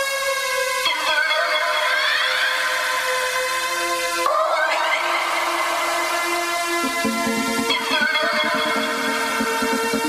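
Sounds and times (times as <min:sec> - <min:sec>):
bass and beat: 0:06.3 - 0:10.0
held synth note: 0:06.8 - 0:10.0.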